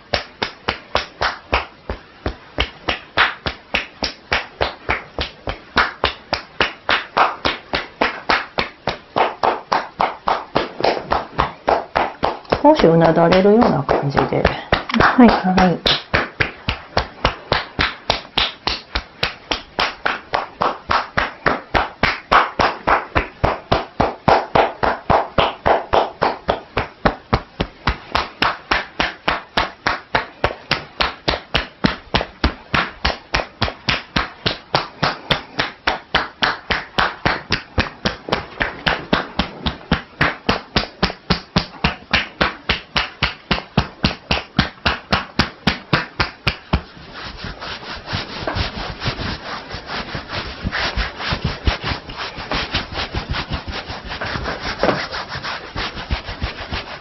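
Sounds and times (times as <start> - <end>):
hands clapping on head massage: 0.0 - 57.0
hands rubbing skin: 0.0 - 57.0.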